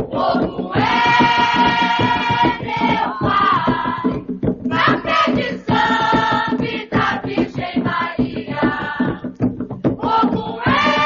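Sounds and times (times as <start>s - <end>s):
drum beats: 0.0s - 11.0s
choir singing: 0.1s - 4.1s, 4.7s - 9.2s, 10.0s - 11.0s.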